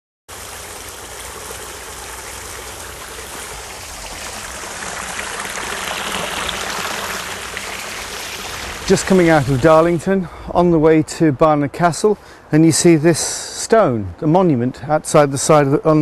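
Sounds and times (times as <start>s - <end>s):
outdoor rushing noise: 3.9s - 11.0s.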